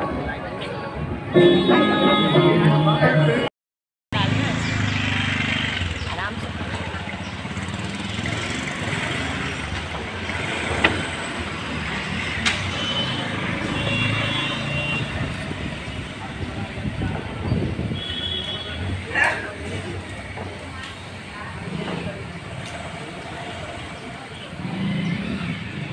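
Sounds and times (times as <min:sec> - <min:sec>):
traffic noise: 0:00.0 - 0:03.5, 0:04.1 - 0:25.9.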